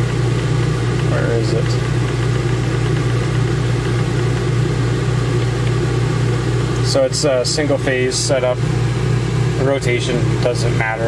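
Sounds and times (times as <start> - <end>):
low machine drone: 0.0 - 11.0.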